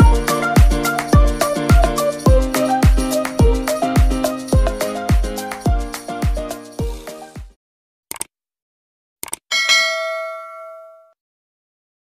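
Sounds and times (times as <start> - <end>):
notification bell ding: 9.5 - 11.2.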